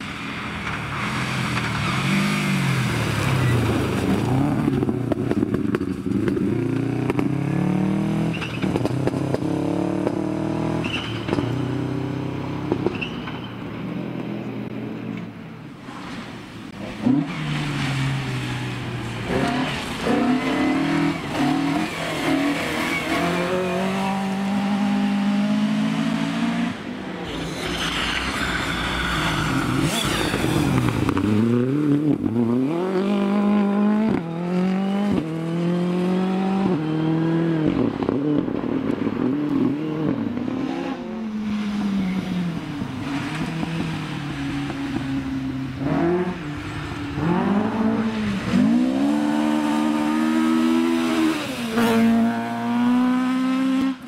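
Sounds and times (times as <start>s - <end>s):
rally car engines revving: 0.0s - 13.5s, 14.2s - 54.0s.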